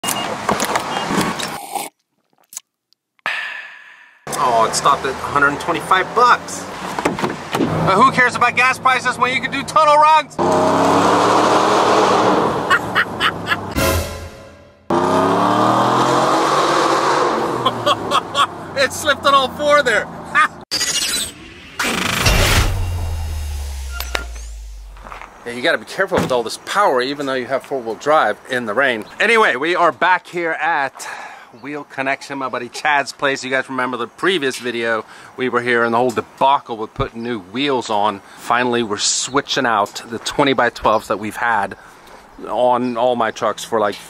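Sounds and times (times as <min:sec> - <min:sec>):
man laughing: 0:12.6 - 0:13.8, 0:17.5 - 0:18.8, 0:20.4 - 0:20.6
short beeps: 0:22.2 - 0:25.0
crash hit with deep boom: 0:22.2 - 0:25.1.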